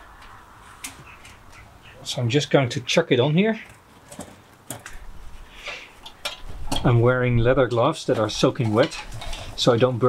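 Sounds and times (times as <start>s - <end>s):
metal hook scraping: 8.2s - 9.9s.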